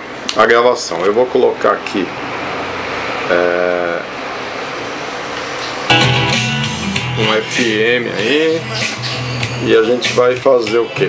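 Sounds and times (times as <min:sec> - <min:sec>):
guitar music: 0:05.9 - 0:10.4.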